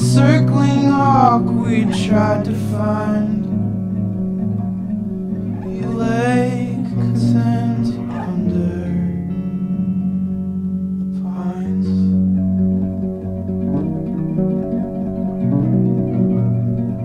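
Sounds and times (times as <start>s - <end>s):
plucked guitar: 0.0s - 17.0s
steady low notes: 0.0s - 17.0s.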